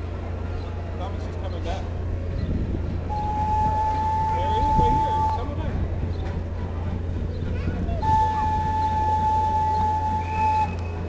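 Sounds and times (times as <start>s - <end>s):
train rumble: 0.0s - 11.0s
steady high tone: 3.1s - 5.6s, 8.0s - 11.0s.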